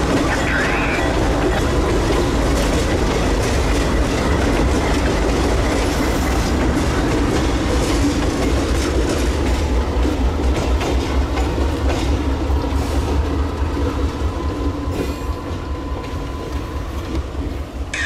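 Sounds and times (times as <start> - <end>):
diesel locomotive engines rumbling: 0.0 - 18.0
wheels clicking over rail joints: 0.0 - 18.0.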